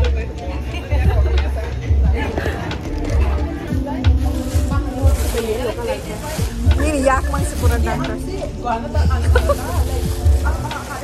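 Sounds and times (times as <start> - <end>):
background music: 0.0 - 11.0
people's voices: 0.0 - 11.0
plastic bag crinkling: 4.2 - 8.4, 9.2 - 11.0
laughter: 9.2 - 9.8.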